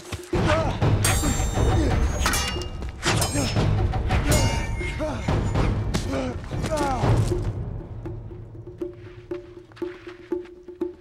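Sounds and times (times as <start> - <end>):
metal weapons clashing: 1.0 - 6.2.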